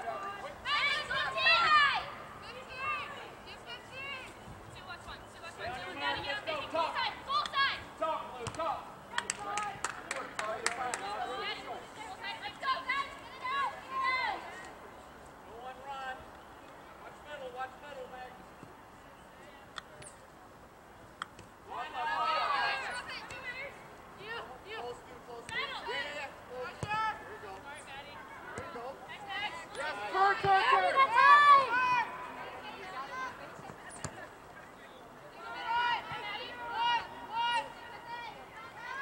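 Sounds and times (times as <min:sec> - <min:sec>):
players shouting: 0:00.0 - 0:04.2, 0:21.6 - 0:24.8, 0:25.4 - 0:34.3, 0:35.2 - 0:39.0.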